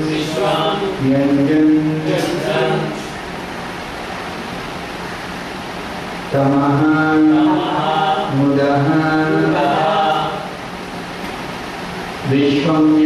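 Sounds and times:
man chanting a prayer: 0:00.0 - 0:03.1, 0:06.3 - 0:10.5, 0:12.2 - 0:13.0
steady hiss: 0:00.0 - 0:13.0.

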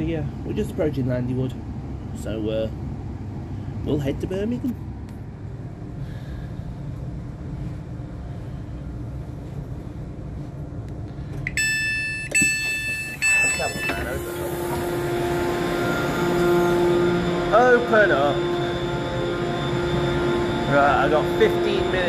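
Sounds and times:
steady low hum: 0:00.0 - 0:22.0
door warning beeps: 0:11.5 - 0:15.0.

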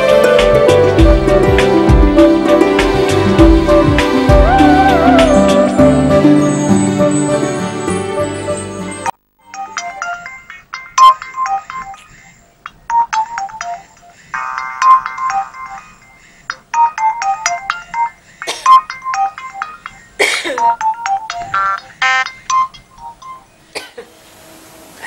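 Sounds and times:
background music score: 0:00.0 - 0:10.2
phone ringtone beeping melody: 0:09.4 - 0:23.5.

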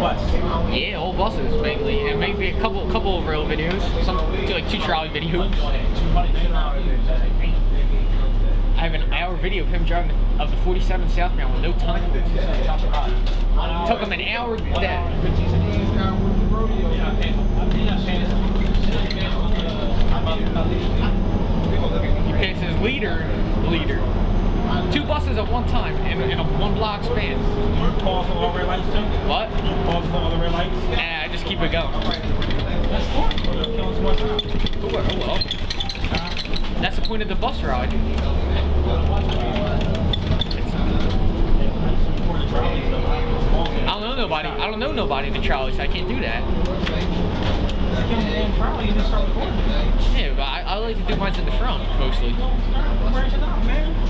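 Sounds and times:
bus diesel engine running: 0:00.0 - 0:36.0, 0:36.6 - 0:54.0
indistinct voices: 0:00.0 - 0:54.0.

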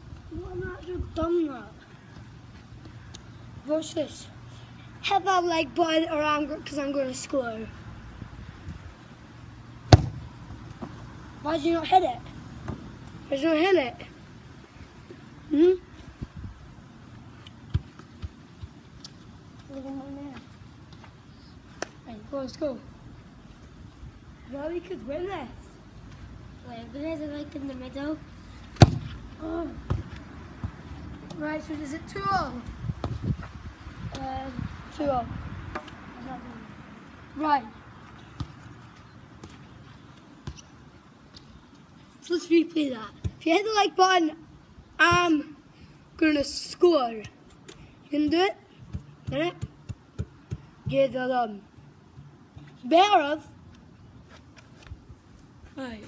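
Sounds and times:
outdoor background noise: 0:00.0 - 0:56.0
football thumping on grass: 0:09.9 - 0:11.0, 0:28.8 - 0:29.2
soft thumps: 0:28.8 - 0:29.2.

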